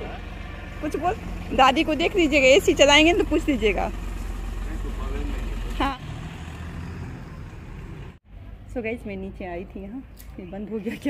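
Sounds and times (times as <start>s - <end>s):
car engine humming and driving off: 0.0s - 8.3s.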